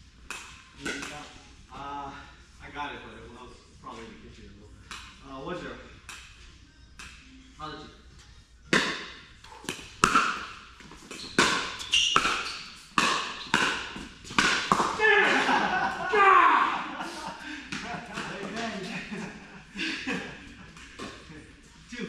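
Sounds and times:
ball bouncing on court: 0:08.7 - 0:15.0
paddle hitting pickleball: 0:08.7 - 0:15.0.

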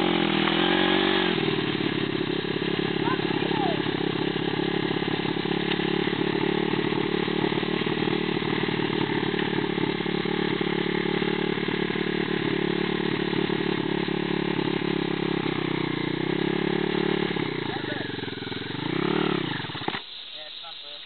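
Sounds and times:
motorcycle engine running steadily: 0:00.0 - 0:20.0.

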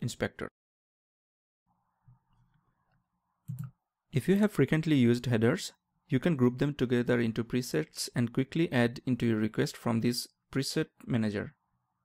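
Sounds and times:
computer mouse click: 0:03.5 - 0:03.8.

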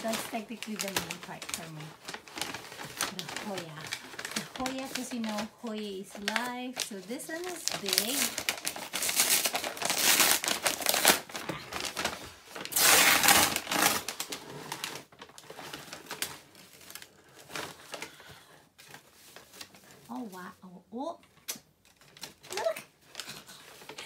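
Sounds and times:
paper bag crinkling and rustling: 0:00.0 - 0:20.6, 0:21.7 - 0:24.0.

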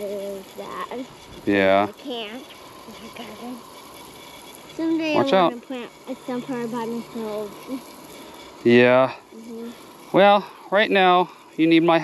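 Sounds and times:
child talking: 0:00.0 - 0:03.6, 0:04.8 - 0:07.8, 0:09.3 - 0:09.8
garden hose spray hissing: 0:00.0 - 0:12.0.

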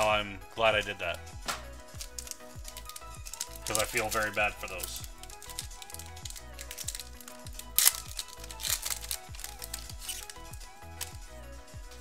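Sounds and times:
background music with steady beat: 0:00.0 - 0:12.0
sharp foil crackle: 0:01.7 - 0:12.0
foil wrapper crinkling: 0:01.8 - 0:11.3.

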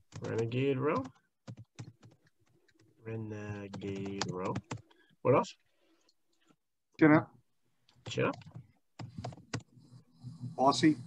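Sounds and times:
computer keyboard keystrokes: 0:00.1 - 0:02.9, 0:03.5 - 0:04.9, 0:08.0 - 0:09.7.

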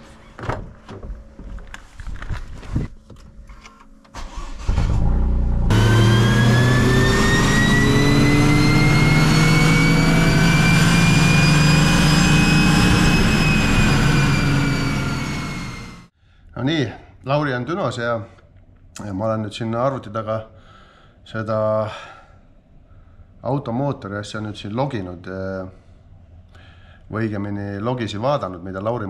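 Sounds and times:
car engine revving on dyno: 0:04.7 - 0:16.1
high whine: 0:05.0 - 0:16.1.

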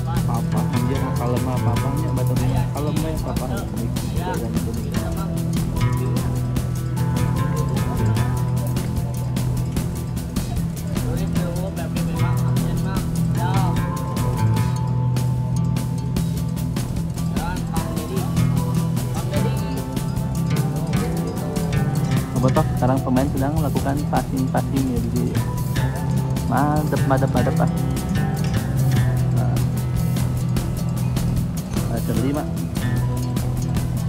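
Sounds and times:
background music with steady beat: 0:00.0 - 0:34.0.

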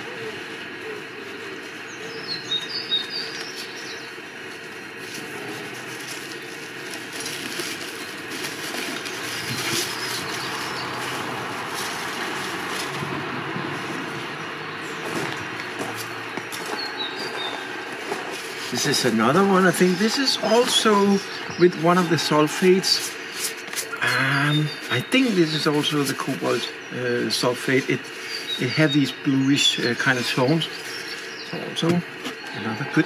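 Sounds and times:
small birds chirping: 0:00.0 - 0:33.0
hands digging through ash: 0:05.0 - 0:21.2.

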